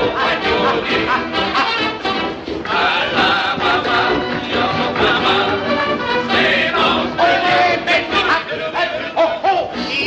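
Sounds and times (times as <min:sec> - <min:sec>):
male vocal group singing: 0:00.0 - 0:02.0, 0:02.6 - 0:10.0
jazz dance band playing: 0:00.0 - 0:10.0.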